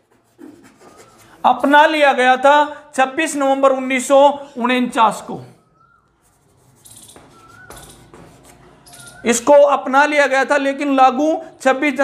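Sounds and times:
chalk scratching on blackboard: 0.0 - 1.6, 6.1 - 9.2.

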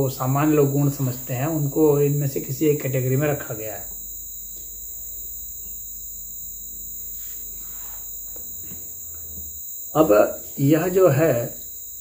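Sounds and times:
high-pitched insect chirring: 0.0 - 12.0
low hum: 0.0 - 12.0.

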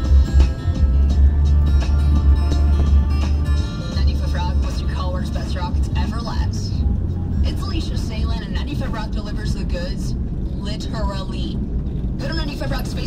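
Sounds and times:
music on radio: 0.0 - 13.0
road noise: 0.0 - 13.0
truck engine rumble: 0.0 - 13.0
radio announcer talking: 4.0 - 6.8, 7.4 - 11.6, 12.2 - 13.0.

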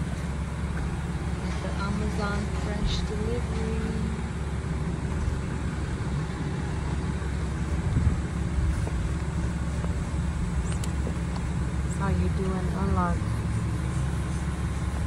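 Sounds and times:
diesel engine idling: 0.0 - 15.0.

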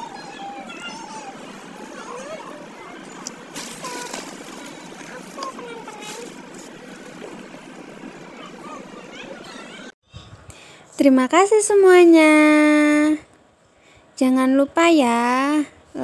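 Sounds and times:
outdoor noise: 0.0 - 16.0.

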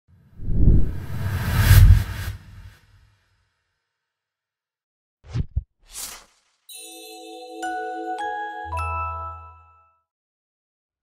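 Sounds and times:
whoosh with low rumble: 0.3 - 2.8.

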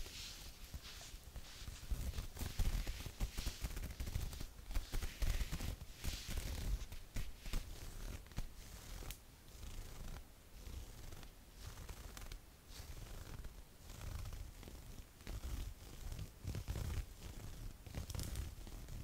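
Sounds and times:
fabric rustling: 0.0 - 19.0
fingernails scratching mesh fabric: 0.0 - 19.0.

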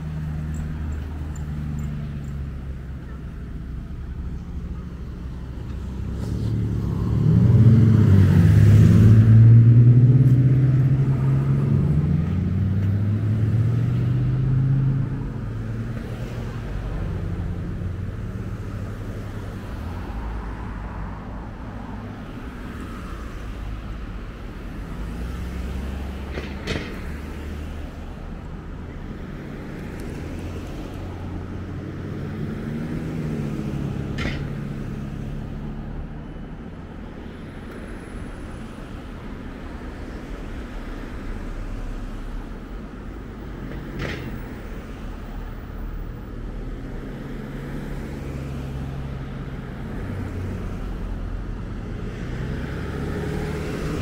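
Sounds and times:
cars passing: 0.0 - 54.0
traffic rumble: 0.0 - 54.0.

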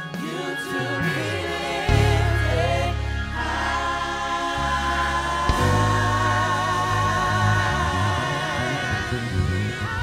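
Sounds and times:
gospel choir singing in harmony: 0.0 - 10.0
instrumental backing: 0.0 - 10.0
deep bass notes: 1.9 - 10.0.

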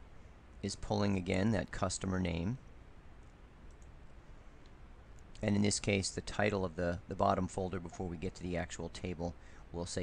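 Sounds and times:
low background hum and hiss: 0.0 - 10.0
faint mouse clicks: 3.2 - 4.0.

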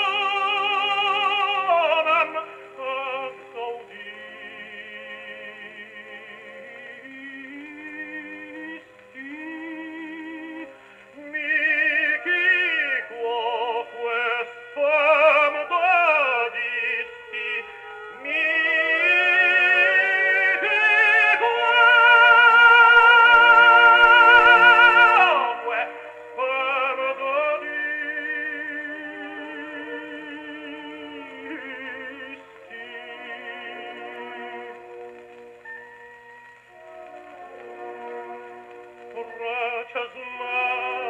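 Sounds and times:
gramophone playing vocal record: 0.0 - 41.0.

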